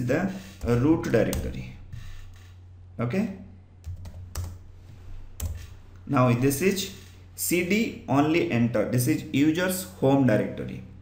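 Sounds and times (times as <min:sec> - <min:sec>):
computer keyboard keystrokes: 0:03.8 - 0:04.6.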